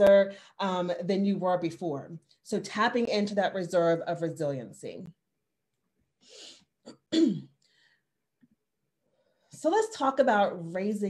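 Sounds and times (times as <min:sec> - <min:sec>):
woman clearing her throat: 0:06.8 - 0:07.6.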